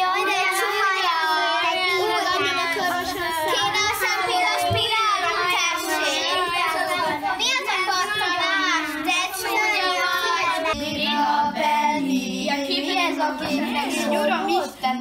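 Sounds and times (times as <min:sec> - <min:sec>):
children's voices sing-song: 0:00.0 - 0:15.0.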